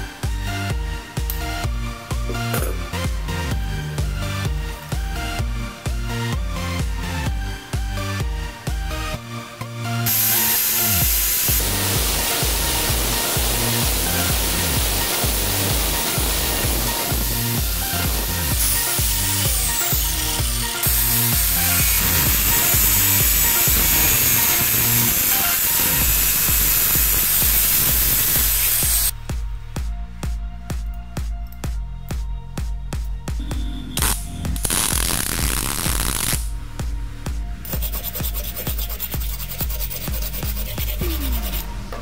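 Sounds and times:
electronic dance music: 0.0s - 41.8s
angle grinder grinding steel: 10.1s - 29.1s, 37.7s - 41.7s.

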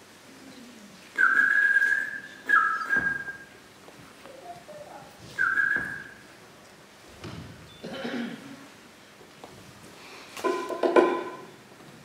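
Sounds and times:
whistled notes: 1.2s - 3.6s, 5.4s - 6.2s.

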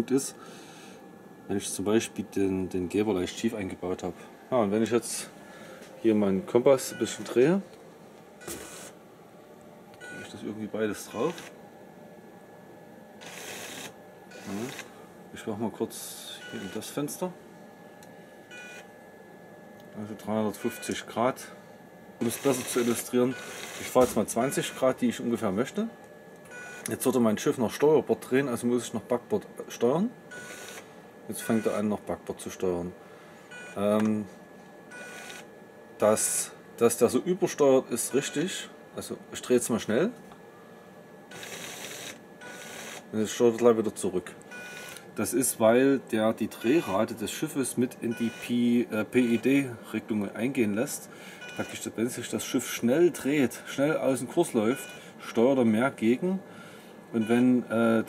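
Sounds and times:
small electric motor running: 13.2s - 14.9s, 22.3s - 23.9s, 30.4s - 30.8s, 35.0s - 35.4s, 41.3s - 43.0s.

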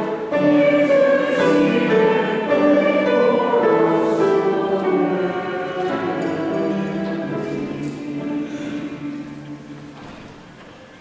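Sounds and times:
voices singing a hymn: 0.0s - 10.2s.

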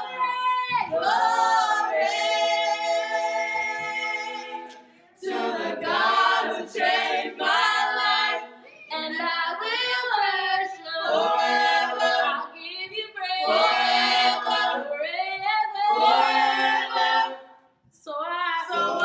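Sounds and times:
group singing a cappella gospel: 0.0s - 19.0s.

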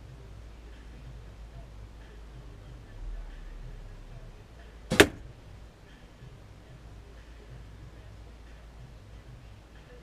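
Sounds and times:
bow string snap: 4.9s - 5.3s.

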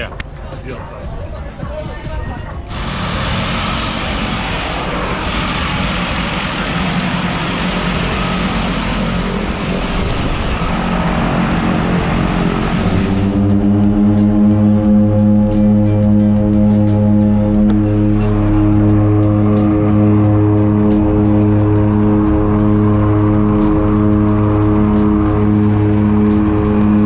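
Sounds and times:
turboprop engines rushing: 0.0s - 27.0s
propeller drone: 2.6s - 27.0s.

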